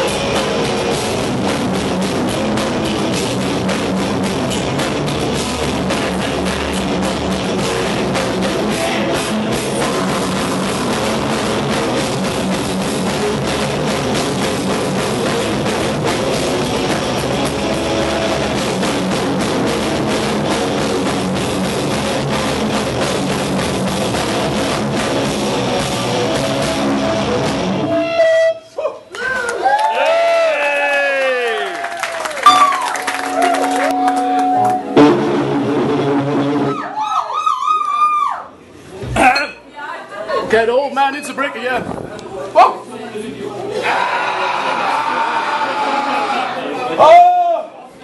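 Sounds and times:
black metal band playing: 0.0 - 28.3, 32.4 - 36.8
pitched tones sweeping: 32.5 - 35.7.

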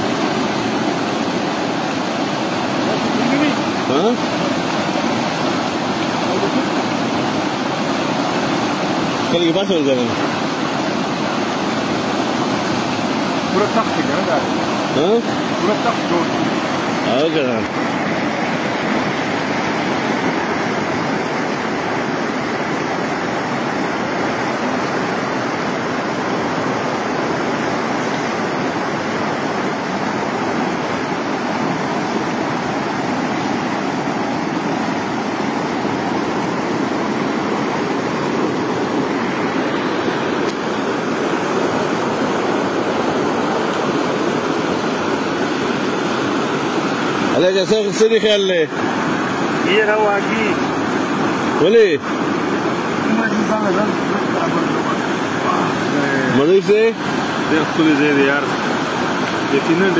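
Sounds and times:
river rushing whitewater: 0.0 - 59.9.

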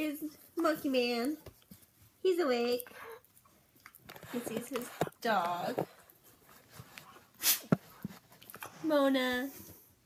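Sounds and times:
woman speaking: 4.3 - 5.9.

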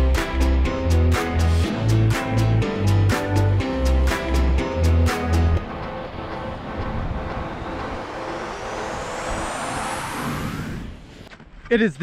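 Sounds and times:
wind rushing on microphone: 5.6 - 11.3
thin rising whistle: 7.4 - 11.1.

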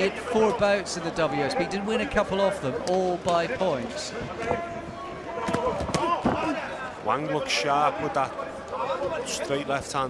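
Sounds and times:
voices in arena: 0.0 - 10.0.

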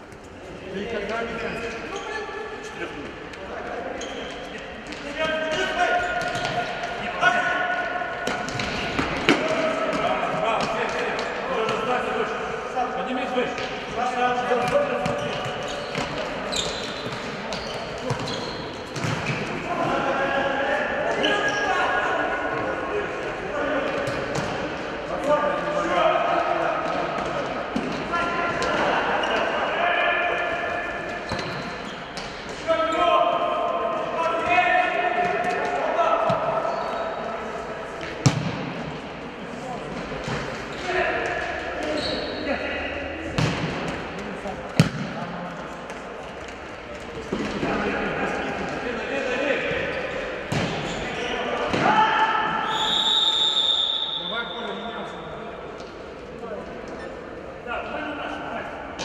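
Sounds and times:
players shouting in sports hall: 27.8 - 39.4, 47.3 - 55.6.

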